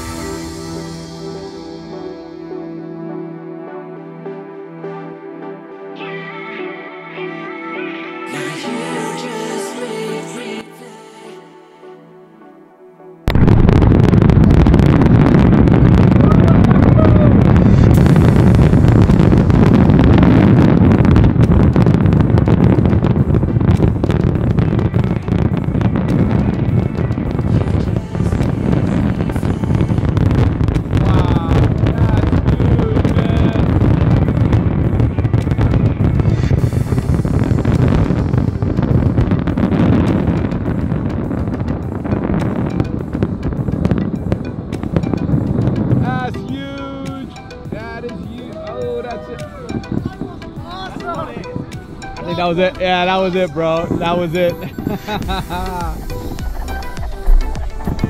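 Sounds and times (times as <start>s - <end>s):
fireworks bursting and cracking: 0.0s - 1.3s, 13.3s - 58.0s
music: 0.0s - 58.0s.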